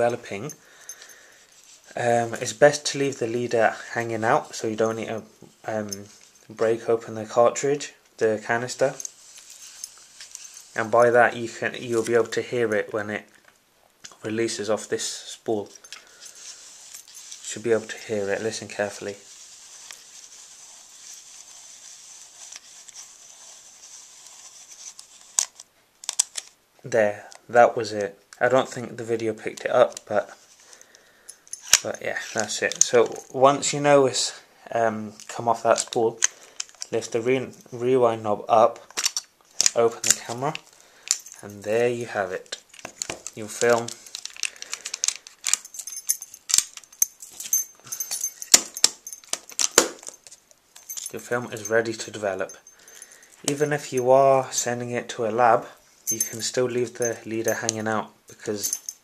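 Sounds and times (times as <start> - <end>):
camera handling clicks and rattles: 25.3 - 26.6, 38.9 - 39.8, 42.7 - 51.1.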